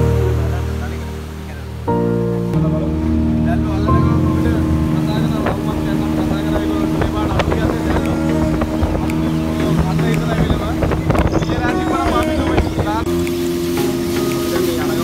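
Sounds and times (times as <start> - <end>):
outboard motor droning: 0.0 - 15.0.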